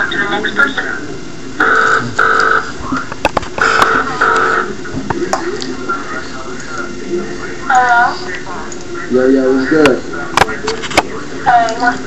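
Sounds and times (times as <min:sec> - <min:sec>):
telephone ringing beeps: 0:01.6 - 0:02.7, 0:03.6 - 0:04.7.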